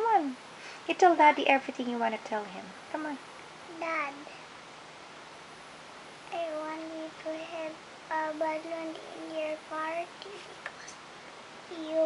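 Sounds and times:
child singing in a high voice: 0:06.3 - 0:10.6, 0:11.7 - 0:12.0.

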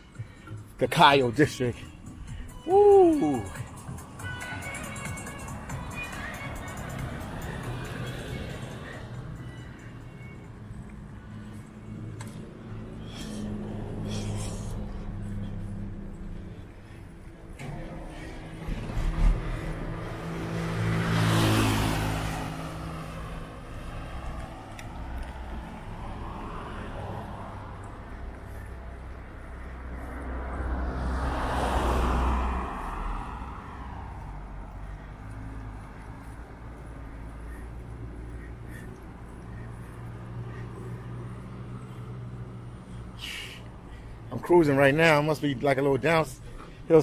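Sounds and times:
vehicles passing on a road: 0:00.0 - 0:47.0.

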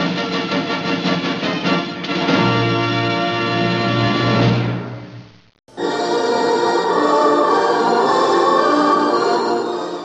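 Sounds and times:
choir singing held chords: 0:05.7 - 0:10.0.

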